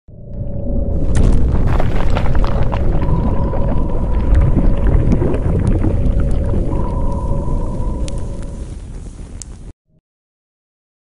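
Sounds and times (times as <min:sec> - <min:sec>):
deep rumble: 0:00.1 - 0:09.7
scattered crackles: 0:01.0 - 0:09.7
held tones: 0:03.0 - 0:08.9.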